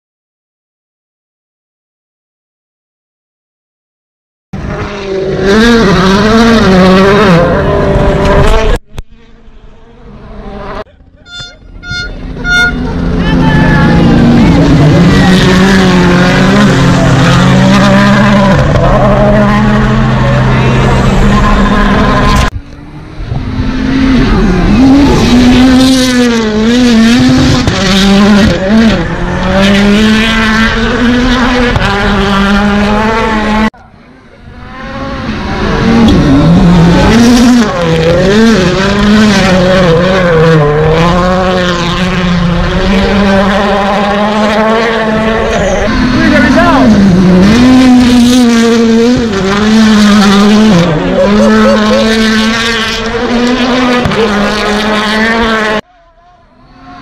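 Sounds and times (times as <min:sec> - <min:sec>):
rally car engines at full throttle: 0:04.6 - 0:57.0.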